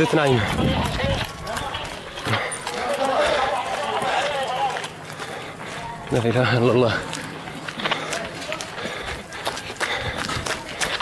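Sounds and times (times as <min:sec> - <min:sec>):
people calling out: 0:00.0 - 0:06.5
running footsteps on a street: 0:00.0 - 0:11.0.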